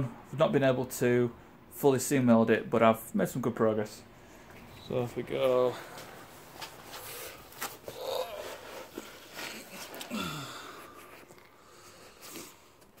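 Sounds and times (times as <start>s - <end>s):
man grunting with effort: 7.8s - 9.0s, 10.0s - 10.8s.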